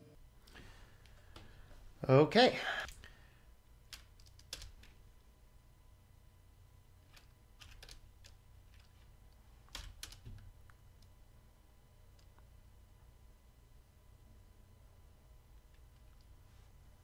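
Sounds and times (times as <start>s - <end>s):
computer keyboard keystrokes: 3.9s - 5.0s, 7.1s - 9.0s, 9.7s - 10.4s.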